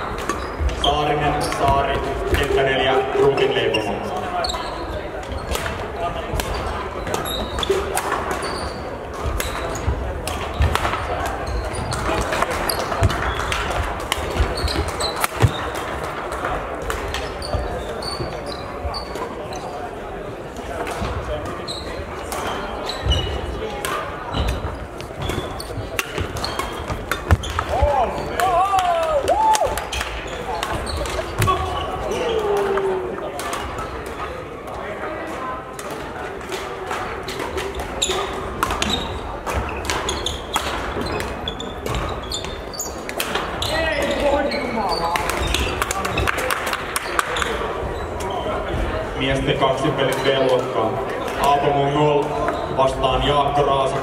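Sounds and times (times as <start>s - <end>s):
shoe squeaks: 0.0s - 1.8s, 3.4s - 5.6s, 6.5s - 10.7s, 11.4s - 13.5s, 14.3s - 15.8s, 17.2s - 20.0s, 21.5s - 23.6s, 24.3s - 28.4s, 38.0s - 46.2s, 47.0s - 48.8s
background chatter: 0.0s - 54.0s
rackets hitting shuttlecocks: 5.2s - 18.4s, 22.2s - 34.4s, 35.2s - 44.2s.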